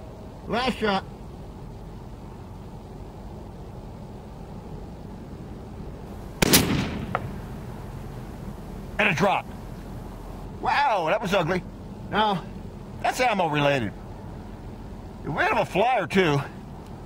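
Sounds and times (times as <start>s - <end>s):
rifle shot with echo: 6.4s - 7.7s.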